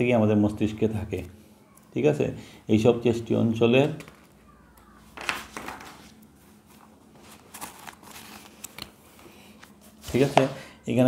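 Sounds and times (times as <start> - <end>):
paper pages rustling: 5.0 - 10.5.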